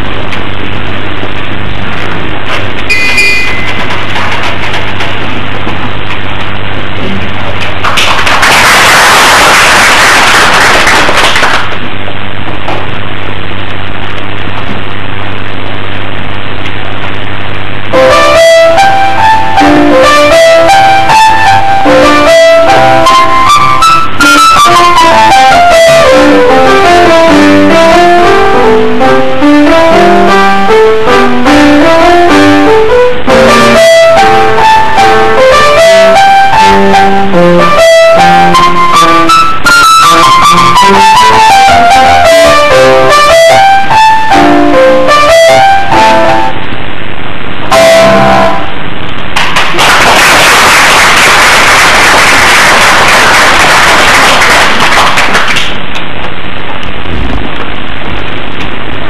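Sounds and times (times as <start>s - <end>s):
audience applause: 7.8s - 11.8s, 49.4s - 55.8s.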